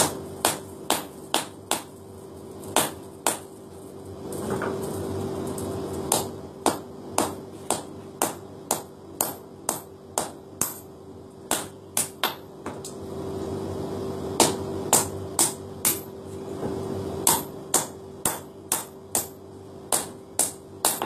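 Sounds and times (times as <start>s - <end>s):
steady hum: 0.0s - 21.0s.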